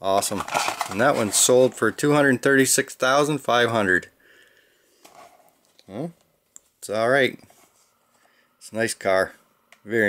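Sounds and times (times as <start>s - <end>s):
plastic blister package rustling: 0.1s - 2.0s.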